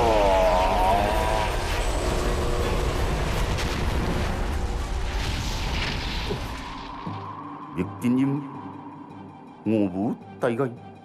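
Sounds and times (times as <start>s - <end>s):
low rumble of fiery blast: 0.0s - 7.0s.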